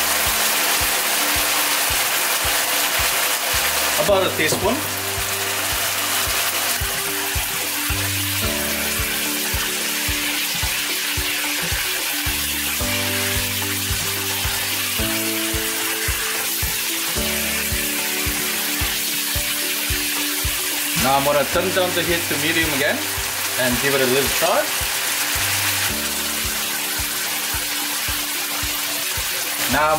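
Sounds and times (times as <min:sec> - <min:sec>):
background music with steady beat: 0:00.0 - 0:29.9
meat sizzling in a wok: 0:00.0 - 0:29.9.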